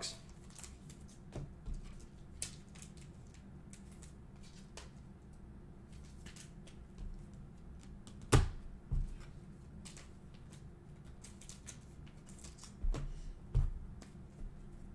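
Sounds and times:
cards clicking and sliding: 9.8s - 13.1s.

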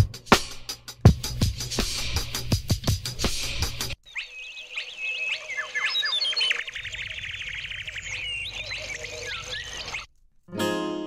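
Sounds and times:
chirping gliding synth tones: 4.0s - 10.1s.

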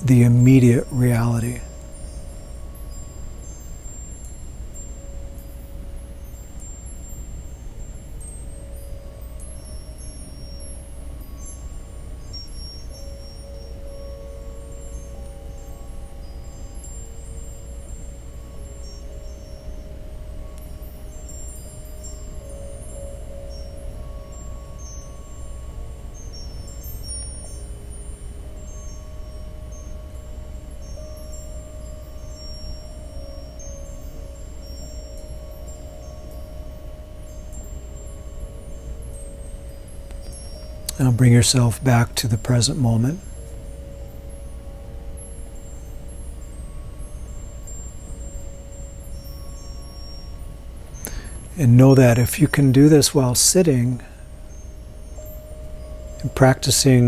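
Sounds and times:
long held tones: 0.0s - 57.0s
tinkling wind chimes: 0.0s - 57.0s.

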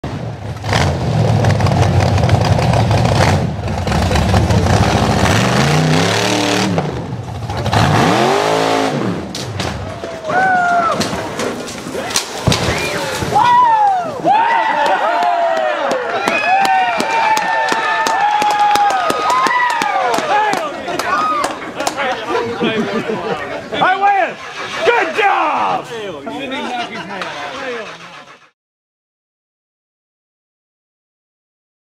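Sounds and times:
buggy engine revving hard: 0.1s - 9.8s
sharp knocks of buggy flipping: 9.3s - 14.2s
crowd shouting and yelling: 9.7s - 28.6s.

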